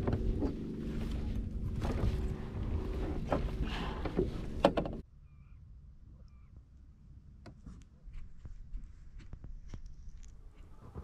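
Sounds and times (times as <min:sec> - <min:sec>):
steady low rumble: 0:00.0 - 0:05.0
faint bird chirps: 0:05.1 - 0:06.6.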